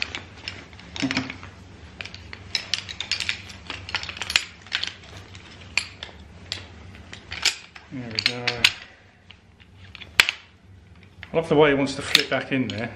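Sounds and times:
chair frame poles clicking: 0.0 - 12.9.

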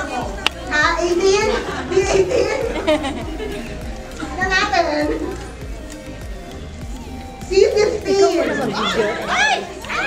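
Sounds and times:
hubbub of voices: 0.0 - 10.0
excited shouts and squeals: 7.2 - 10.0.

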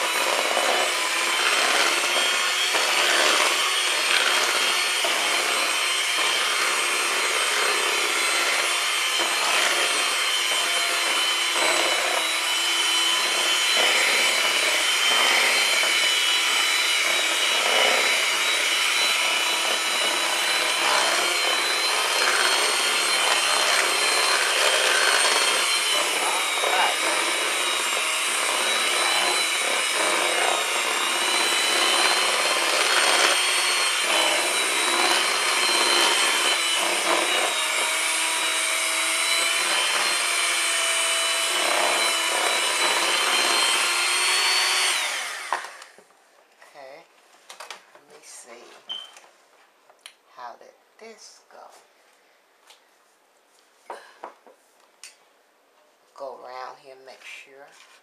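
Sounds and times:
electric hand mixer whining: 0.0 - 46.0.

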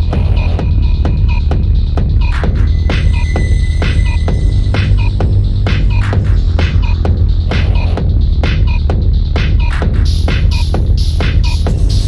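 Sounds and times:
heavy bass drone: 0.0 - 12.0
percussive beat: 0.0 - 12.0.

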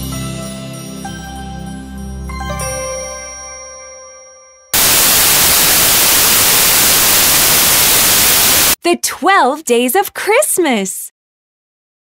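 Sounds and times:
white-noise static burst: 4.8 - 8.8.

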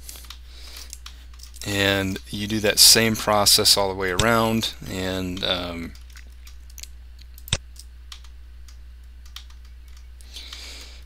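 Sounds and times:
steady low hum: 0.0 - 11.0
computer mouse and keyboard clicks: 0.1 - 1.7, 5.4 - 10.9.

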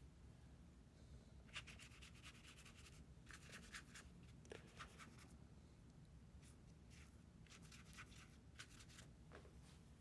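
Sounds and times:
brush scratching on paper: 1.5 - 5.3, 6.4 - 9.1.

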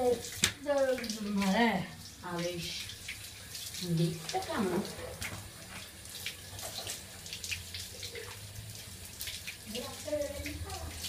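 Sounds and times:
water running from a hose: 0.0 - 11.0
water splashing on tiled floor: 0.0 - 11.0.

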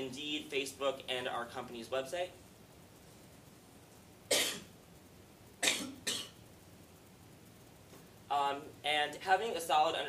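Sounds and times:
man coughing: 4.3 - 4.7, 5.6 - 6.4.

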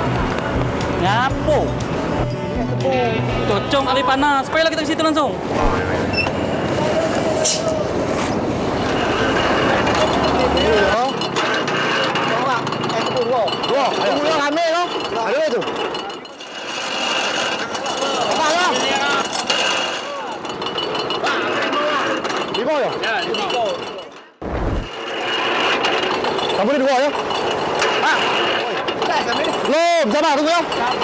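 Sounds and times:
motorbike engine running: 0.0 - 4.9
roadside traffic noise: 0.0 - 31.0
voices talking: 0.8 - 16.4.

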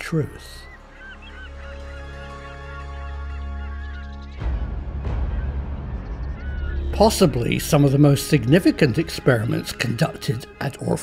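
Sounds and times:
birds honking: 0.0 - 11.0
low drone: 4.0 - 10.6.

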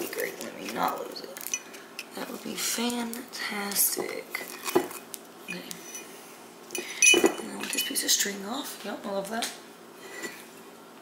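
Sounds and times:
ceramic vase clinking: 6.8 - 7.9.

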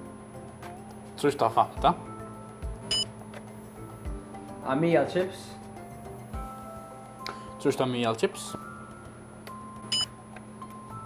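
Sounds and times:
faint steady hum: 0.0 - 11.0
cash register beep: 2.9 - 3.1, 9.9 - 10.1.

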